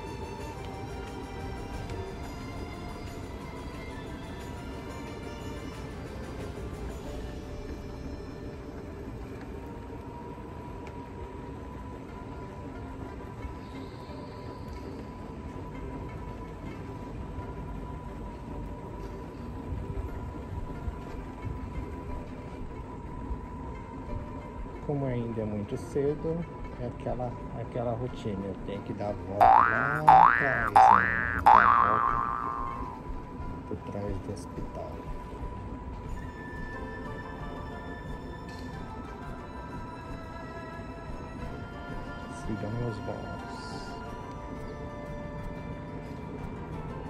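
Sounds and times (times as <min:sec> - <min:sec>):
background music: 0:00.0 - 0:47.0.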